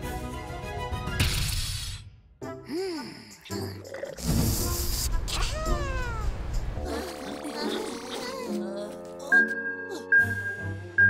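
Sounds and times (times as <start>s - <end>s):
cartoon cat-like cry: 5.2s - 9.5s.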